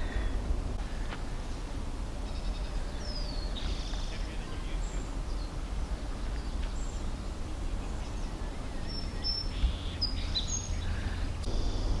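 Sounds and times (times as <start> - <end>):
low outdoor rumble: 0.0 - 12.0
small birds chirping: 0.0 - 12.0.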